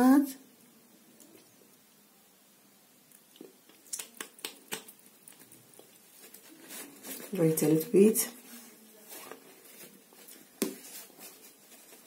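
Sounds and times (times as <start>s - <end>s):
wet lip clicks and smacks: 3.1s - 5.9s.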